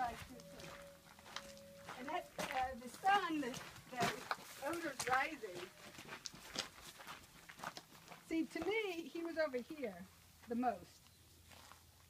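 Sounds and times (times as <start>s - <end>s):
dog scuffing on grass: 0.0s - 8.2s.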